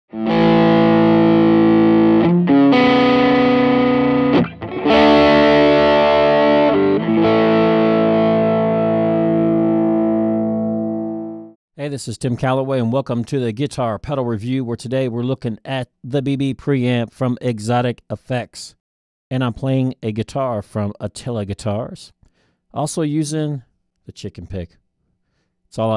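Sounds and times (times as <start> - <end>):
overdriven electric guitar chords: 0.1 - 11.6.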